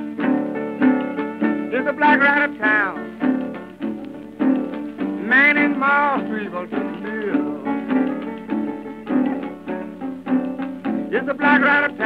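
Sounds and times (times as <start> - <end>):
acoustic guitar picking blues: 0.0 - 12.0
man singing: 1.6 - 3.1, 5.2 - 7.8, 11.1 - 12.0.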